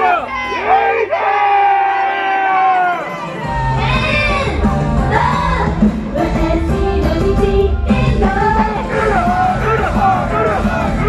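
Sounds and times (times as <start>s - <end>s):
voices shouting in unison: 8.8s - 11.0s.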